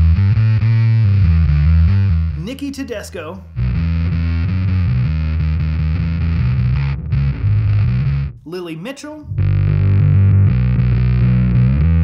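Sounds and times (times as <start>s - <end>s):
distorted electric bass riff: 0.0s - 12.0s.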